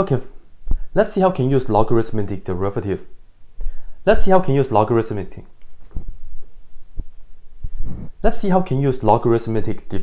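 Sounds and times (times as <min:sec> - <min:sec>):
soft low thumps: 0:00.6 - 0:00.9, 0:05.8 - 0:08.2
faint breath: 0:03.6 - 0:04.0.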